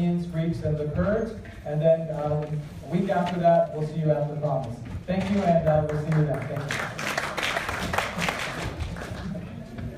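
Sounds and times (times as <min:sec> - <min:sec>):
audience applauding: 0:06.0 - 0:09.5.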